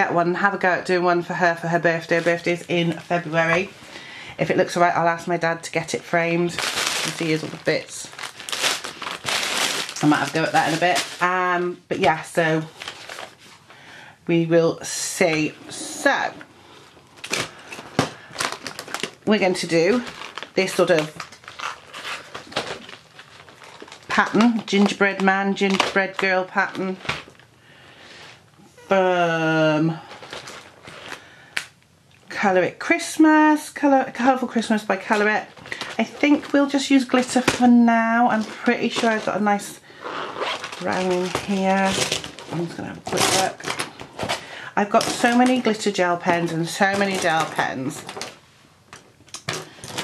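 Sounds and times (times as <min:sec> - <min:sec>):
plastic packaging crinkling: 0:05.8 - 0:13.7, 0:16.7 - 0:27.5, 0:30.0 - 0:31.8, 0:35.0 - 0:50.0.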